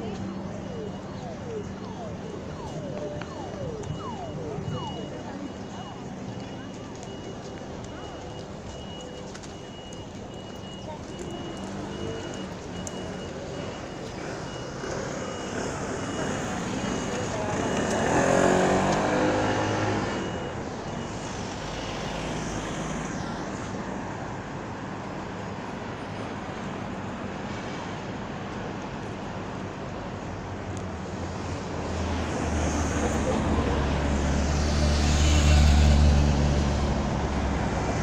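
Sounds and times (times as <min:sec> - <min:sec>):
city street traffic: 0:00.0 - 0:38.0
repeating high-pitched beep: 0:00.6 - 0:23.0
vehicle engine passing close: 0:14.7 - 0:20.6, 0:31.3 - 0:38.0.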